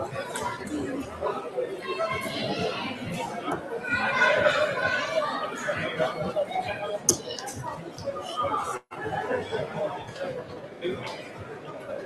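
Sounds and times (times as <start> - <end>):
chatter of voices in a hall: 0.0 - 12.0.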